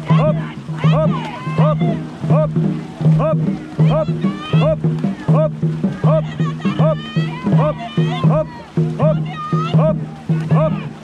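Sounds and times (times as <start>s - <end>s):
paddles splashing water: 0.0s - 11.0s
rhythmic shouted calls: 0.0s - 11.0s.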